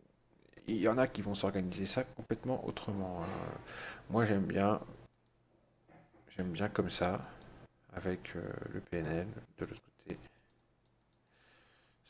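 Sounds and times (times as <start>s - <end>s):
computer mouse clicks: 5.1s - 5.4s, 7.2s - 7.6s, 9.0s - 11.9s.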